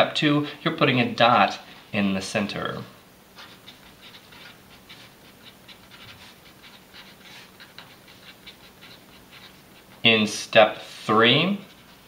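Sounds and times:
marker scratching on paper: 3.3 - 10.2, 10.9 - 12.0.

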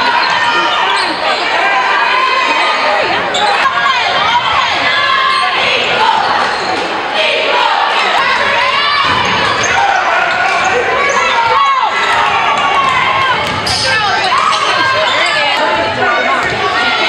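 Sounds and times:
crowd chatter: 0.0 - 17.0
people calling out: 0.0 - 17.0
basketball bouncing: 12.8 - 14.6.

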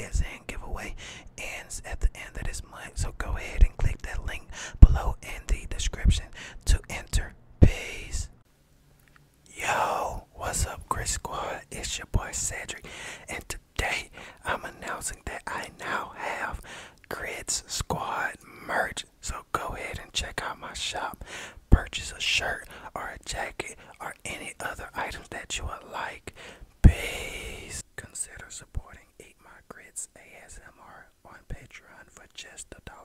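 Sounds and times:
man whispering: 0.0 - 8.4, 9.4 - 33.0
short breathy rush: 12.8 - 13.3.

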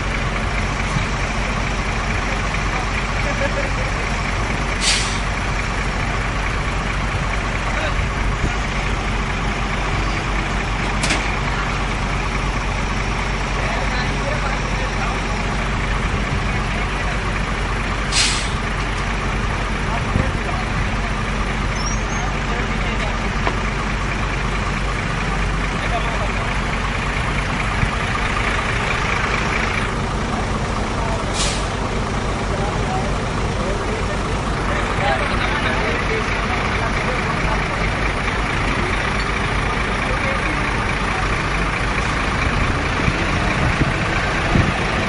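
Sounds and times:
heavy diesel engine running: 0.0 - 45.0
air hiss: 4.8 - 5.3, 18.1 - 18.6.

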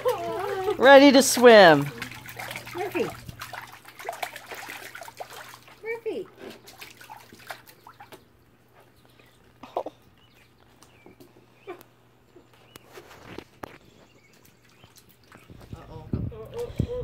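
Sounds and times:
low hum: 0.0 - 5.7.

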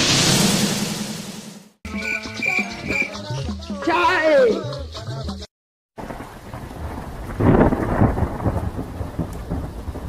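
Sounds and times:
steady rain: 6.0 - 10.0
thunder rolling: 6.0 - 10.0.

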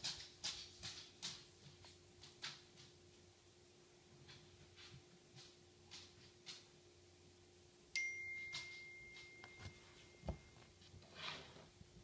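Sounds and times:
high ringing tone: 7.9 - 10.8.

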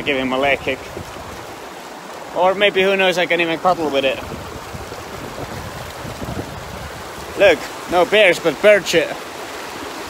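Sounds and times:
running stream water: 0.0 - 10.0.

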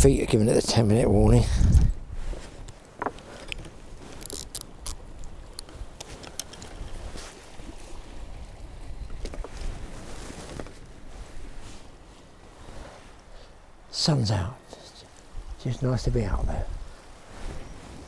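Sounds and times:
wind rumbling on microphone: 0.0 - 13.9, 15.2 - 18.0
fishing tackle handled: 2.6 - 6.9.

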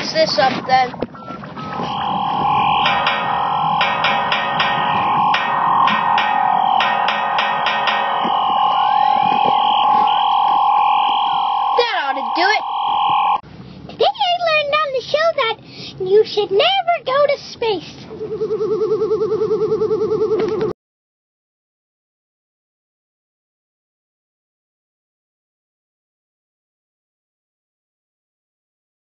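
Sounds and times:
electronic buzzing tone: 1.3 - 13.4
rapid electronic clicks: 1.8 - 13.4.

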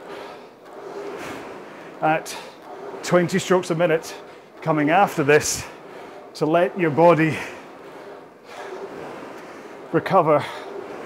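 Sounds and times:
rowing machine rushing: 0.0 - 11.0.

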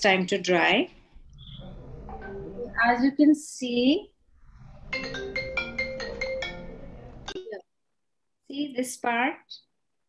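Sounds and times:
electronic ringtone melody: 4.9 - 7.4.

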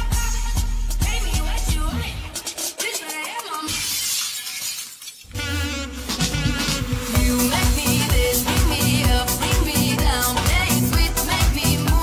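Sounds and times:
dance music: 0.0 - 4.0, 5.3 - 12.0
glass shattering effect: 3.7 - 5.3.

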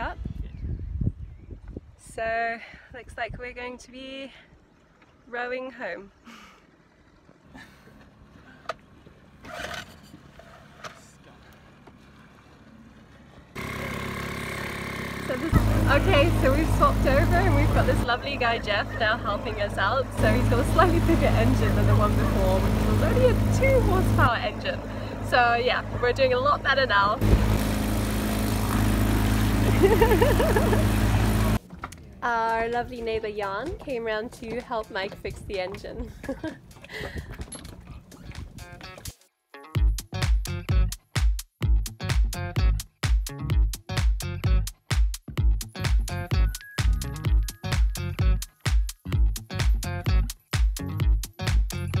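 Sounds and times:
churning wake water: 4.4 - 9.5, 11.1 - 38.7
outboard motor running: 11.2 - 32.5.

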